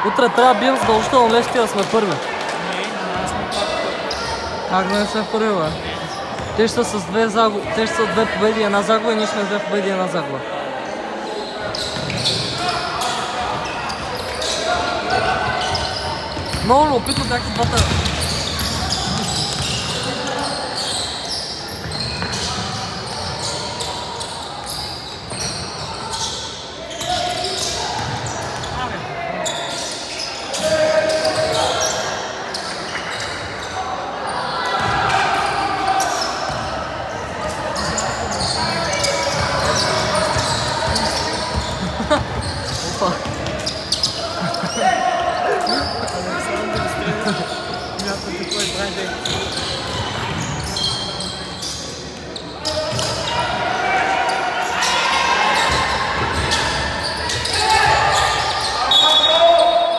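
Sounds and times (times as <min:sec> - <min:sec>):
indistinct echoing voices: 0:00.0 - 0:59.9.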